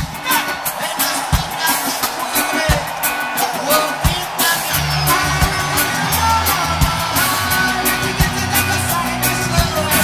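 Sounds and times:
drum hits and cymbals: 0.0 - 10.0
live band playing: 0.0 - 10.0.

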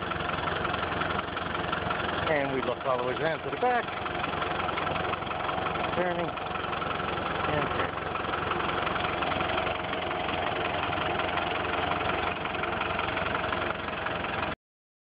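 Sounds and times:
car engine running in reverse: 0.0 - 14.6
wheels turning on snow: 0.0 - 14.6.

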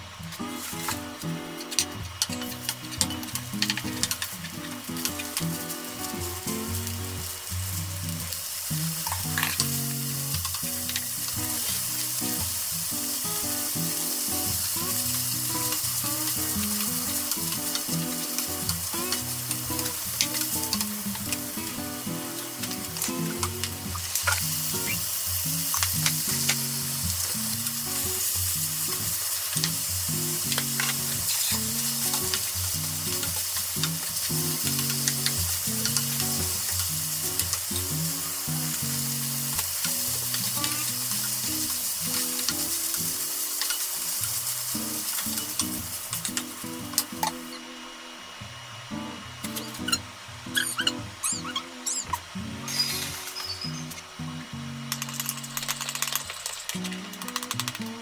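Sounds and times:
meat sizzling in a frying pan: 0.4 - 47.6.

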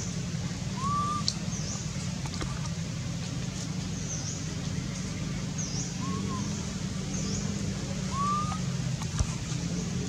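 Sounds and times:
low engine-like hum: 0.0 - 10.0
rising whistled call: 0.8 - 1.4, 6.0 - 6.5, 8.1 - 8.6.

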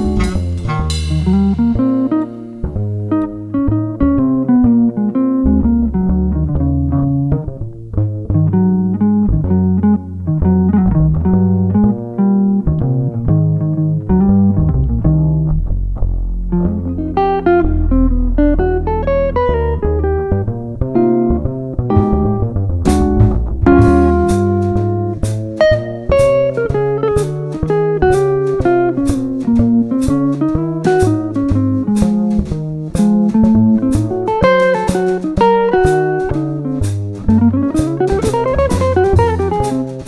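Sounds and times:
drums: 0.0 - 4.5, 21.8 - 40.0
jazz guitar melody: 0.0 - 40.0
plucked double bass: 0.0 - 40.0.

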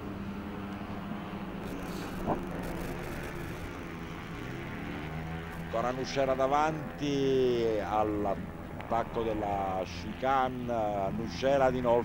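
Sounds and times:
scooter engines droning: 0.0 - 12.0.

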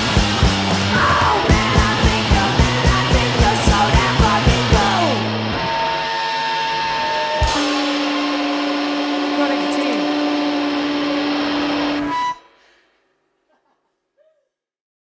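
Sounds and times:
electric guitars and bass ringing: 0.0 - 12.6
cymbal and drum hit: 7.4 - 9.2.

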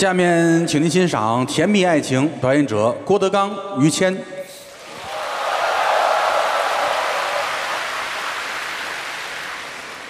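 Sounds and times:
audience applause: 4.8 - 10.0.

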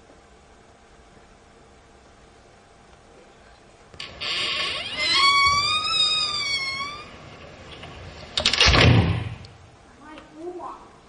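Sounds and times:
high-pitched wavering scream: 4.2 - 7.3.

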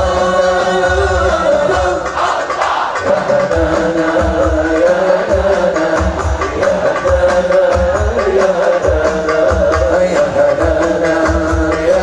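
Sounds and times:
men singing in unison: 0.0 - 12.0.

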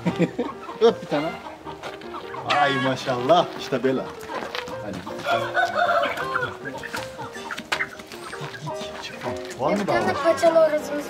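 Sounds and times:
chicken clucking: 0.0 - 11.0.

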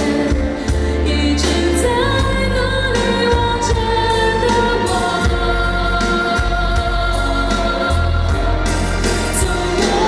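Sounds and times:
steady bass: 0.0 - 10.0
string orchestra: 0.0 - 10.0
woman singing pop ballad: 0.0 - 10.0.

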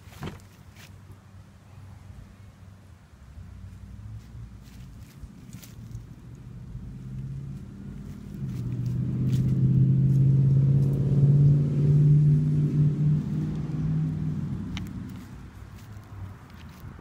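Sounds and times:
vehicle engine droning: 0.0 - 17.0.

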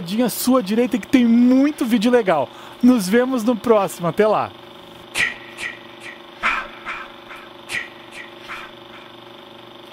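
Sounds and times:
film projector hum: 0.0 - 9.9.

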